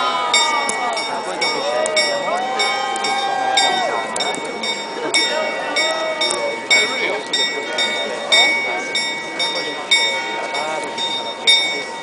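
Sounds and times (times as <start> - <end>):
crowd murmuring: 0.0 - 12.0
small bell ringing: 0.3 - 12.0.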